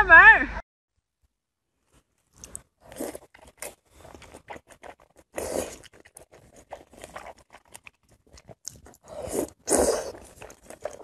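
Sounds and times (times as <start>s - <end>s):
noodles slurped and chewed: 2.2s - 11.0s.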